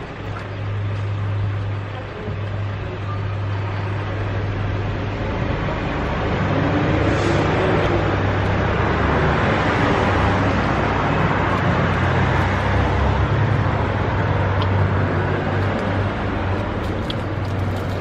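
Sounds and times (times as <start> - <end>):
low engine hum: 0.0 - 18.0
road traffic: 0.0 - 18.0.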